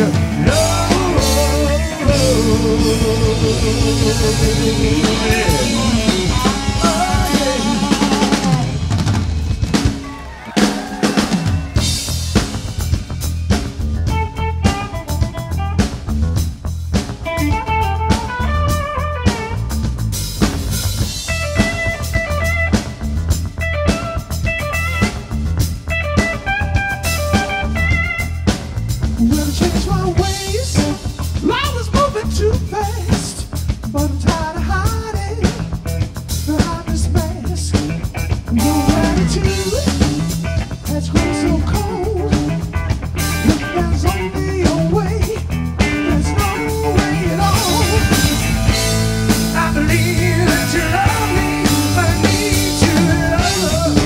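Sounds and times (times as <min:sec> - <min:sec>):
live blues-rock band playing: 0:00.0 - 0:54.0.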